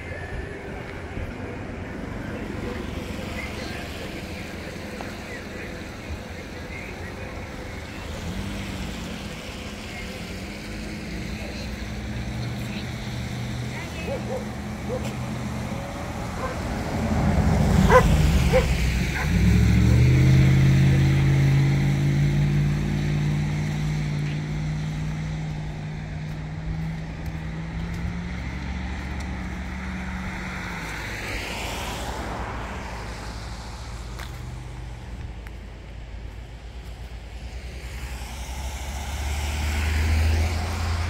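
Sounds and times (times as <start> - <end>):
car passing by: 0.8 - 35.4, 36.6 - 41.0.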